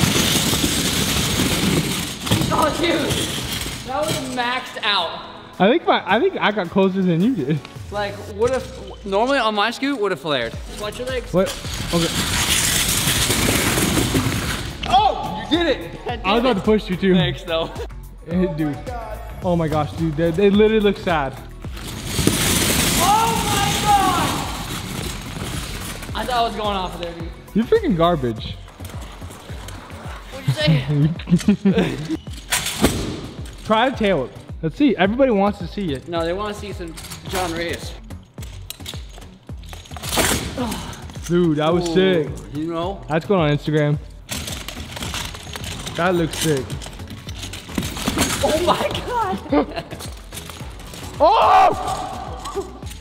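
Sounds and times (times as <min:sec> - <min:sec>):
wheels rolling on wooden floor: 0:00.0 - 0:04.4, 0:10.6 - 0:14.9, 0:28.5 - 0:30.6, 0:44.4 - 0:51.3.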